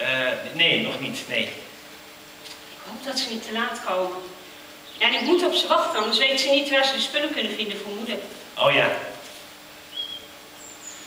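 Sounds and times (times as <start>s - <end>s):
faint steady hum: 0.0s - 11.0s
bird chirps: 4.8s - 6.2s, 9.9s - 11.0s.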